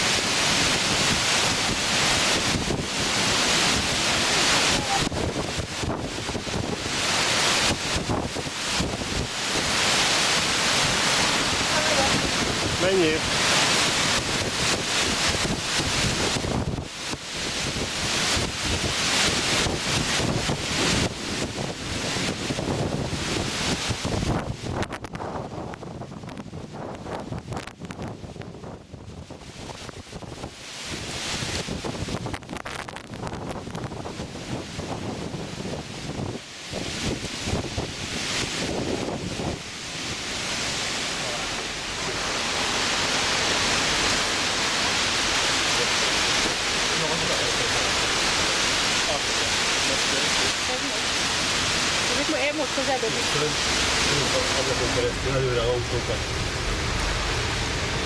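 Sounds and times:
storm wind gusting over microphone: 0.0 - 58.0
waves washing against shore: 0.0 - 58.0.

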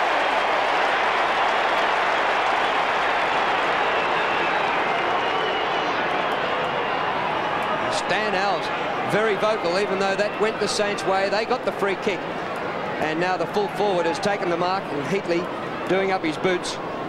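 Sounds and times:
stadium crowd cheering and shouting: 0.0 - 17.0.

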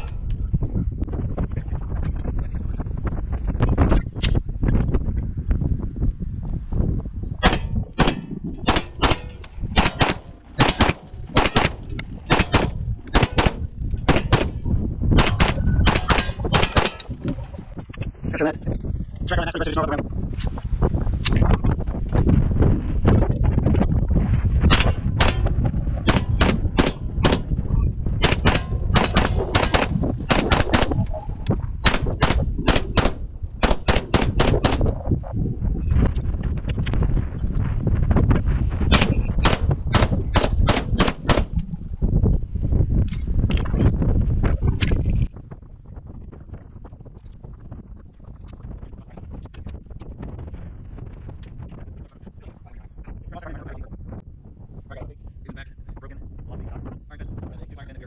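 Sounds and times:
rapid gunshots: 7.4 - 17.1, 24.7 - 27.5, 28.2 - 31.0, 31.8 - 34.9, 38.9 - 41.6.

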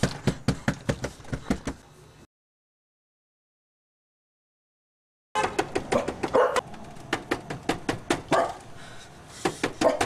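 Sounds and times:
dog barking: 5.9 - 6.6, 8.3 - 8.6, 9.8 - 10.0.

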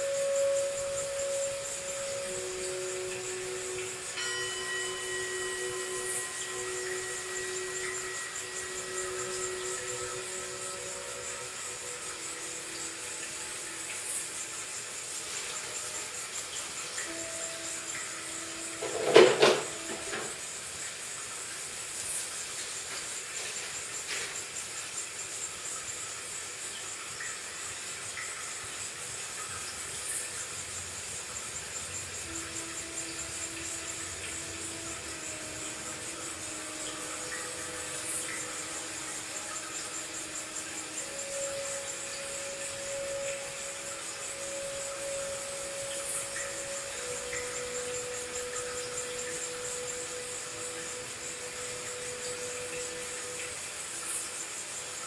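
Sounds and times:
slow ambient music: 0.0 - 55.0
steady high hiss: 0.0 - 55.0.

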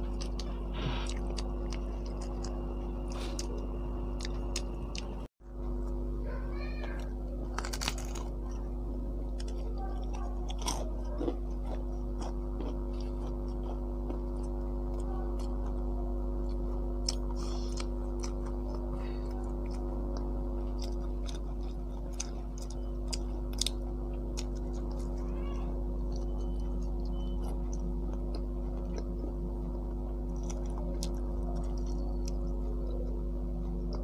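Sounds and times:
crisp pastry chewing: 0.0 - 6.0, 6.8 - 34.0
low hum: 0.0 - 34.0
crunchy bite into fried food: 7.5 - 8.4.

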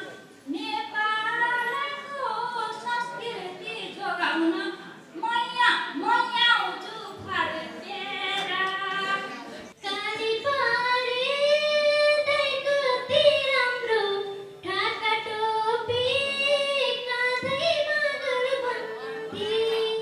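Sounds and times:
woman singing into microphone: 0.5 - 20.0.

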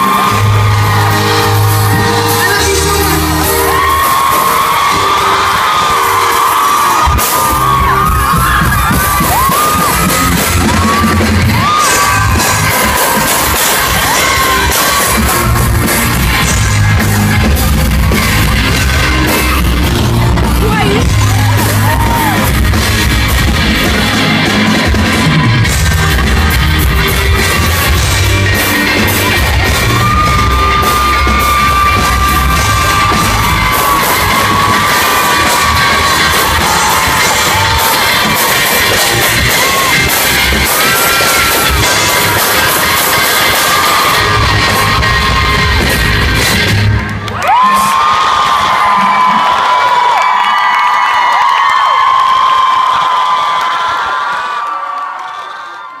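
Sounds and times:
band playing: 0.0 - 50.5
crowd screaming and cheering: 0.0 - 56.0.

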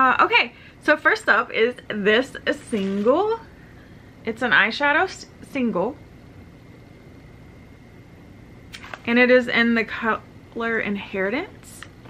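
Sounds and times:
low hum: 1.8 - 12.0.

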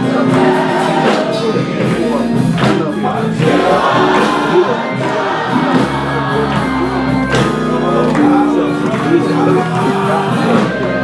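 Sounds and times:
gospel choir singing: 0.0 - 11.0.

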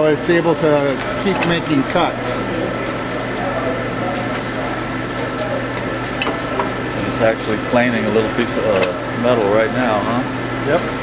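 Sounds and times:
metal shaper humming and hissing: 0.0 - 11.0.

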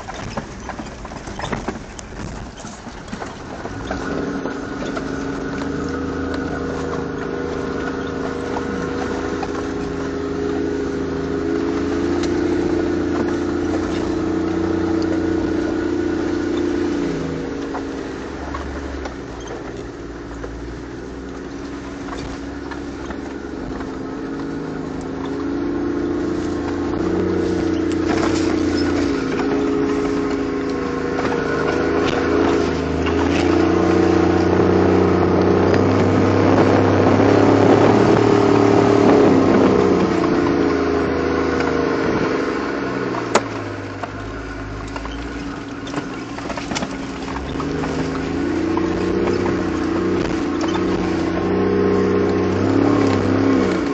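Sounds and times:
vehicle engine: 0.0 - 53.9.

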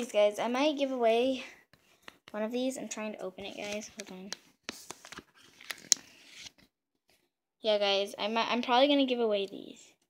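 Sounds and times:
package rustling and crinkling: 3.4 - 6.6.

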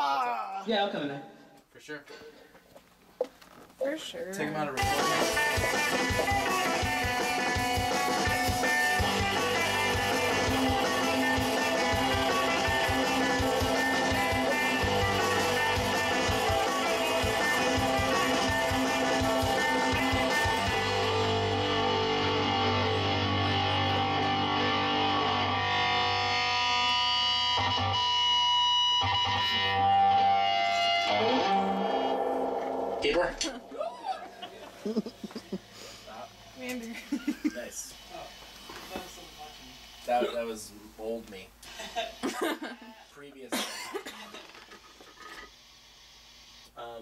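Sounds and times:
rock music with electric guitar: 4.8 - 33.8.

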